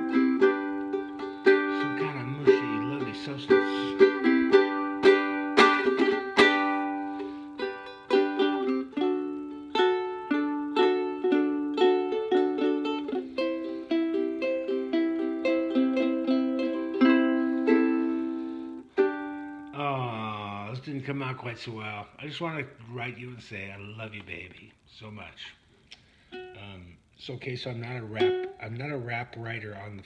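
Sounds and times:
ukulele strums and plucked chords: 0.0 - 20.4, 26.3 - 27.0, 27.8 - 29.0.

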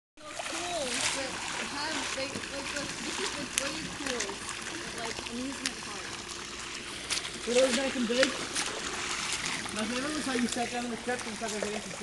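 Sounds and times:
people talking: 0.2 - 6.2, 7.4 - 8.6, 9.7 - 12.0
water splashing and sloshing: 0.2 - 12.0.

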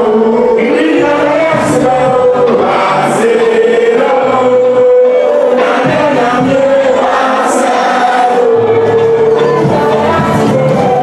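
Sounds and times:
crowd singing along: 0.0 - 11.0
loud music: 0.0 - 11.0.

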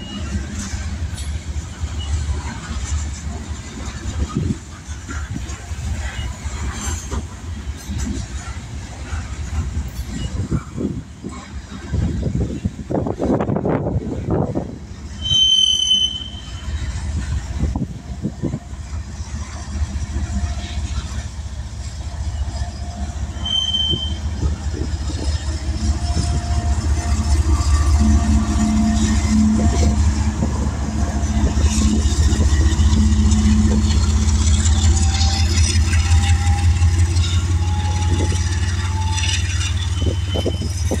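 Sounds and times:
high wheel squeals: 0.0 - 0.8, 15.1 - 17.0, 22.1 - 30.3, 32.6 - 41.0
diesel locomotive engine hum: 0.0 - 41.0
freight train wheels rumbling: 0.0 - 41.0.

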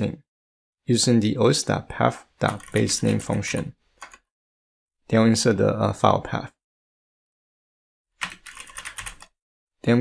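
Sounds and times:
computer keyboard typing: 2.4 - 4.3, 8.2 - 9.4.

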